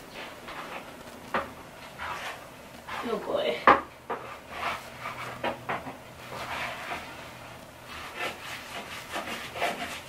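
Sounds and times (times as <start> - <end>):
paint rubbing strokes on wall: 1.8 - 3.4, 4.1 - 10.0.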